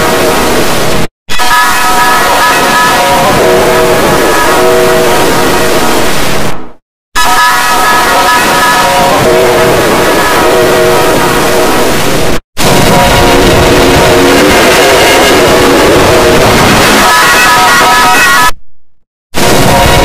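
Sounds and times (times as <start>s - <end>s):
distorted electronic jingle: 12.6s - 18.6s.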